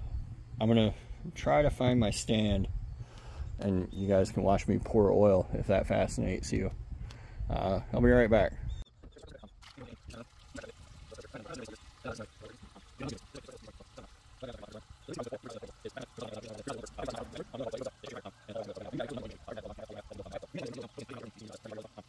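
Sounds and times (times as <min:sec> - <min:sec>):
oil pouring through filter: 0:09.1 - 0:22.0.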